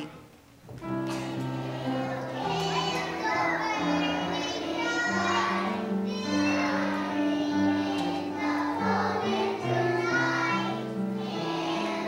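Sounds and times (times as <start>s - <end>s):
piano accompaniment: 0.0s - 12.0s
children singing together: 0.8s - 12.0s.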